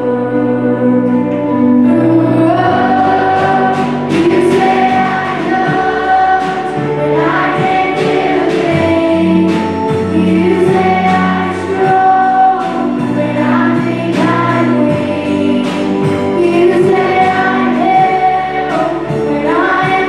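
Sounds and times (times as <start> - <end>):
acoustic guitar: 0.0 - 20.0
drums: 0.0 - 20.0
keyboard: 0.0 - 20.0
women singing together: 0.0 - 20.0.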